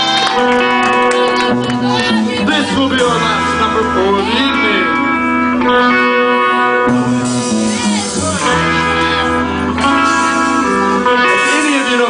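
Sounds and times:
electric guitar notes ringing: 0.0 - 12.0.

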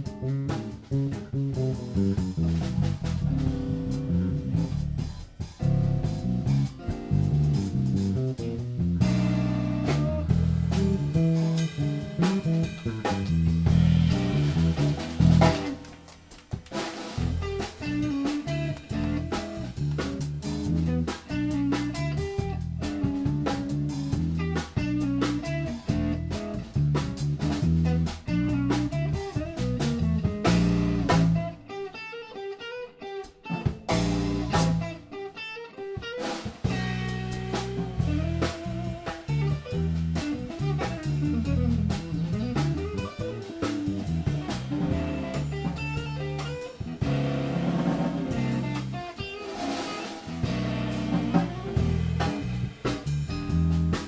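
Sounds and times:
bass: 0.0 - 31.9, 33.4 - 35.4, 36.2 - 54.0
drum kit with cymbals: 0.0 - 32.4, 33.2 - 54.0
jazz guitar: 0.0 - 54.0.

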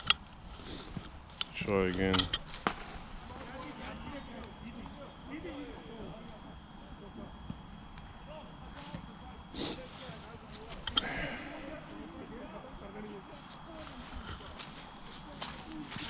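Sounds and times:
faint distant voices: 0.0 - 16.0
outdoor background noise: 0.0 - 16.0
thin steady high tone: 1.4 - 16.0.

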